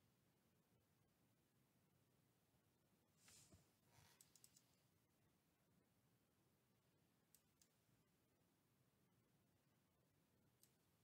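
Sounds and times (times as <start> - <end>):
soft hiss: 3.1 - 4.9
computer mouse clicks: 4.1 - 4.8, 7.3 - 7.8, 10.6 - 10.9.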